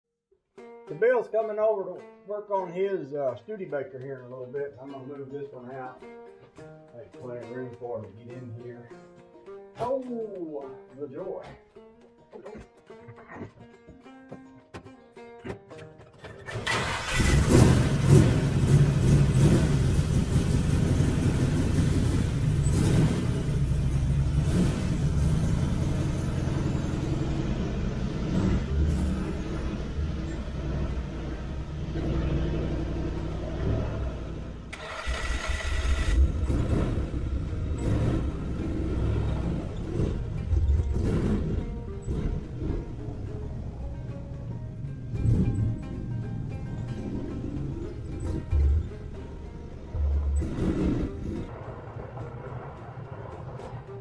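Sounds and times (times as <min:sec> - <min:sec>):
car engine starting and running: 0:16.2 - 0:54.0.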